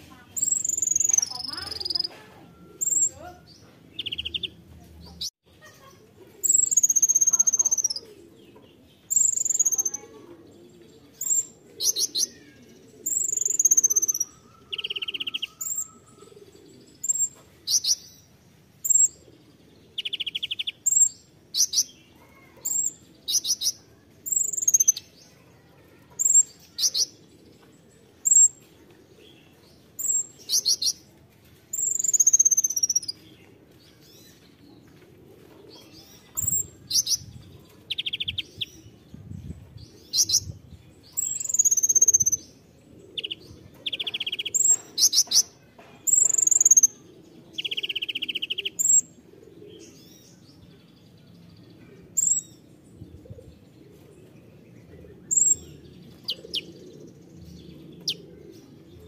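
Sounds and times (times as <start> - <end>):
buzzy bird trills: 0.3 - 4.5, 9.1 - 10.1
sunbird chirping and whistling: 0.4 - 2.0, 2.8 - 3.2, 9.1 - 9.9, 13.1 - 15.9, 31.8 - 33.1, 41.2 - 42.4, 46.1 - 46.8.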